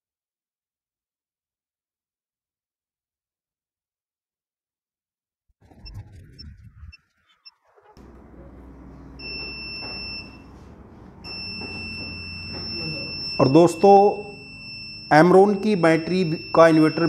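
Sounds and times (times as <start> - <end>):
low hum: 5.6 - 13.4
alarm buzzer beeping: 8.0 - 17.0.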